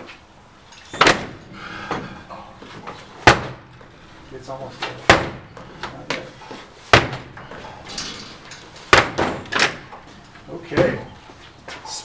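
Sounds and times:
door splitting open: 0.9s - 1.4s, 6.9s - 10.0s
kicks thudding on metal door: 0.9s - 2.1s, 3.2s - 3.8s, 4.9s - 5.8s, 6.9s - 10.1s, 10.7s - 11.1s.

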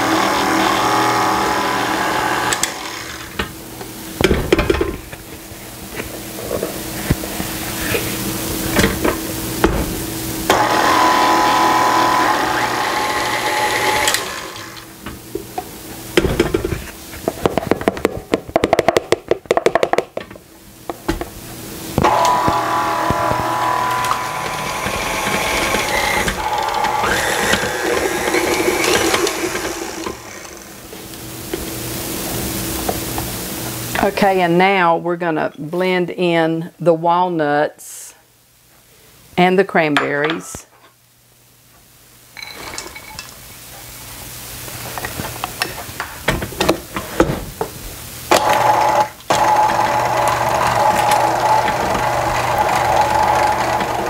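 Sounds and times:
stand mixer motor hum: 10.5s - 14.8s, 22.0s - 30.8s, 48.4s - 54.0s.

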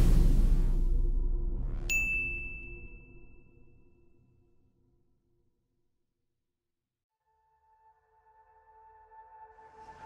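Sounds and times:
low rumble: 0.0s - 2.9s
bright ding: 1.9s - 3.6s.

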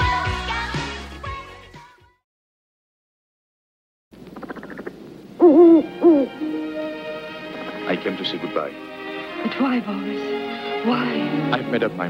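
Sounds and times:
orchestral film score music: 5.4s - 12.0s.

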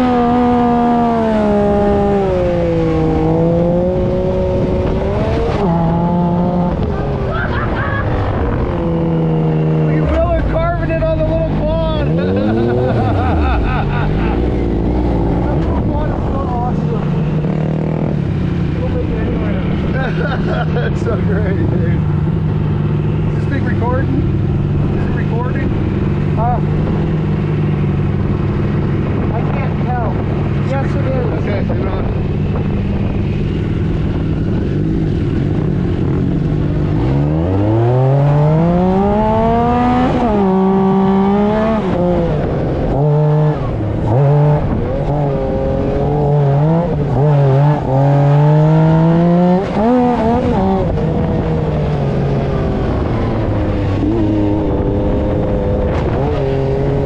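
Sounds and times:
engine revving: 0.0s - 57.0s
wind: 0.0s - 57.0s.

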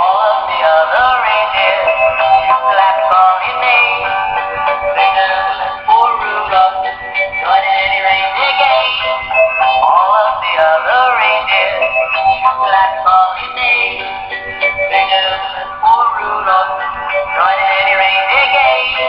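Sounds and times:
toy playing a sung song: 0.0s - 19.0s.

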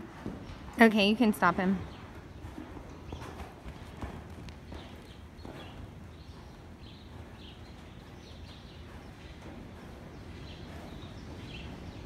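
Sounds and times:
horse hooves on sand: 0.0s - 12.0s.

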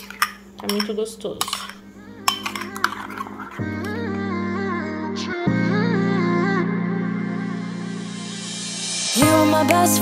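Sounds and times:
metal spoon clinking against bowl: 0.0s - 3.6s
background music: 1.6s - 10.0s.

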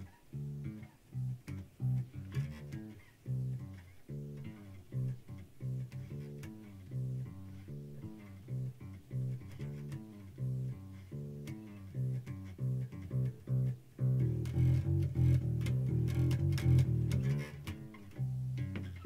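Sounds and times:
electric bass plucked: 0.0s - 19.0s.

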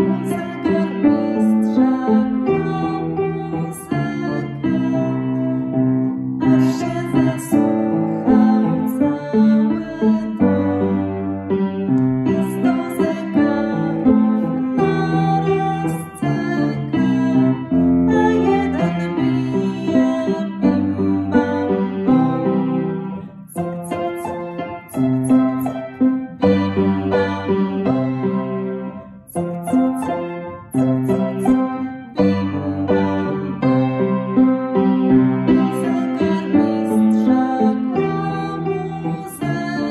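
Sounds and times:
woman singing children's song: 0.0s - 11.4s, 12.0s - 34.0s, 35.2s - 39.9s
piano chords: 0.0s - 39.9s.

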